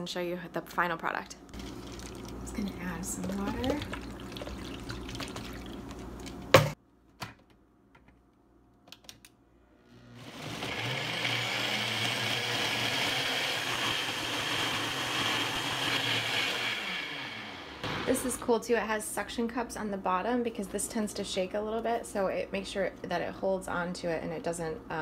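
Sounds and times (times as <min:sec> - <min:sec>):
blender motor running: 0:09.8 - 0:18.1.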